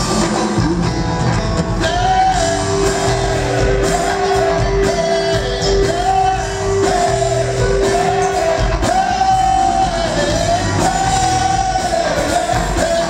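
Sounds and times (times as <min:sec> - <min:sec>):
funk band playing: 0:00.0 - 0:13.0.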